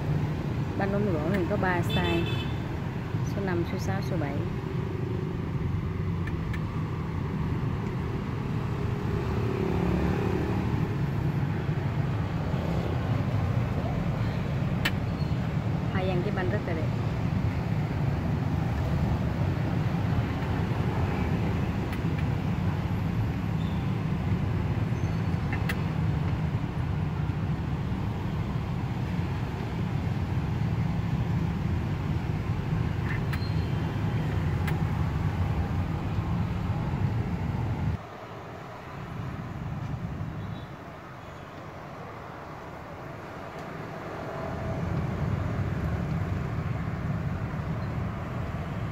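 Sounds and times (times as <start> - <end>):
street traffic rumble: 0.0 - 48.9.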